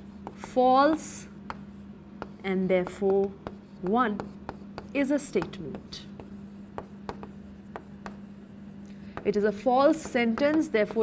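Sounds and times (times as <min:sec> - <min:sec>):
chalk tapping on chalkboard: 0:00.0 - 0:11.0
chalk writing on chalkboard: 0:00.0 - 0:11.0.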